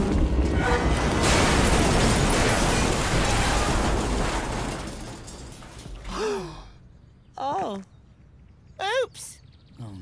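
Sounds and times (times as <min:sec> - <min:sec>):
steel containers collapsing: 0:00.0 - 0:06.1
person sighing: 0:06.1 - 0:06.8.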